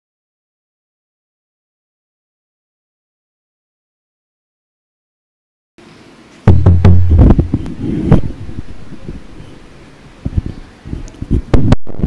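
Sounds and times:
microphone handling knocks: 6.5s - 9.6s, 10.2s - 12.0s
low rumble: 6.5s - 10.5s
microphone rustling: 6.5s - 12.0s.

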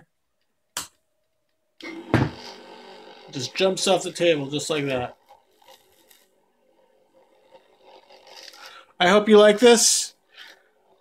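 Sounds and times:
geared motor humming: 1.8s - 11.0s.

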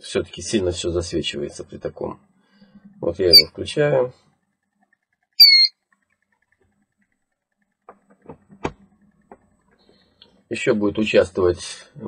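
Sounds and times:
short high electronic beep: 5.4s - 5.7s.

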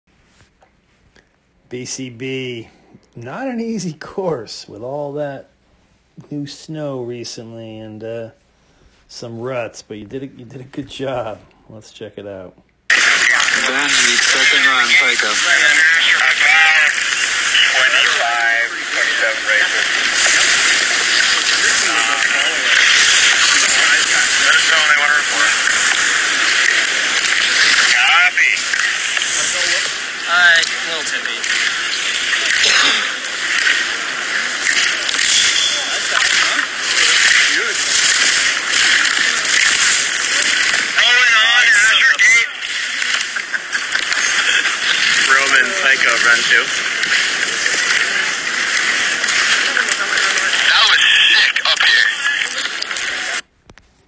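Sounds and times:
voices calling out: 12.9s - 53.4s.

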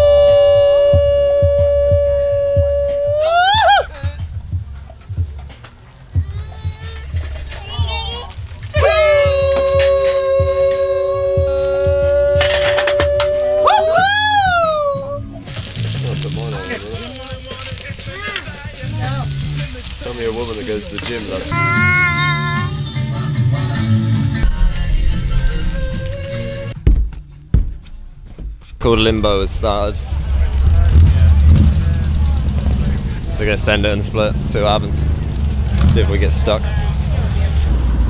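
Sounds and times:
onions sizzling in a pan: 15.5s - 21.6s.

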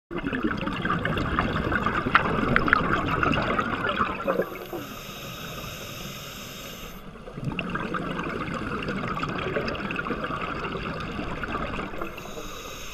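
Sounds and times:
exhaled bubbles gurgling underwater: 0.1s - 12.9s
regulator inhalation hiss: 4.3s - 7.2s, 12.0s - 12.9s.

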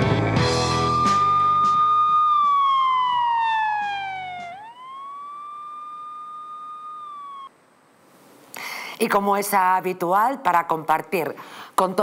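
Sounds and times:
intro music: 0.0s - 7.5s
siren-like sliding tone: 0.6s - 7.6s.

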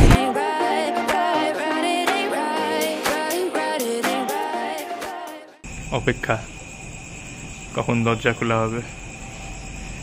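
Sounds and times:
crickets trilling: 5.6s - 10.0s.

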